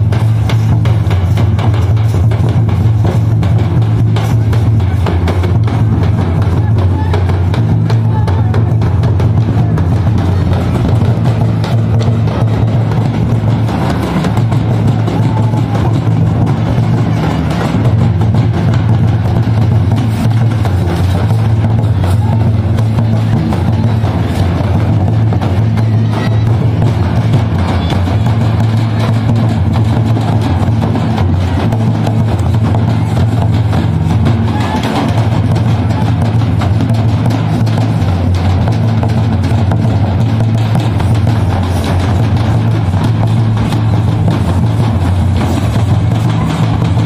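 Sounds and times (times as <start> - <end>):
folk drumming: 0.0 - 47.0.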